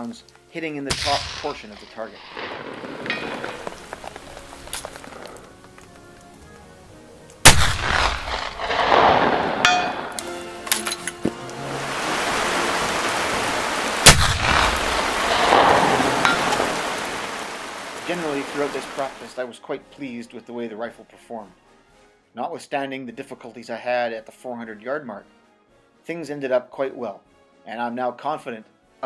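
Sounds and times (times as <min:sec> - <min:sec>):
rifle shots: 0:00.9 - 0:05.4, 0:07.4 - 0:10.2, 0:14.0 - 0:16.8
long rolling echo: 0:00.9 - 0:06.0, 0:07.5 - 0:10.6, 0:11.6 - 0:19.2.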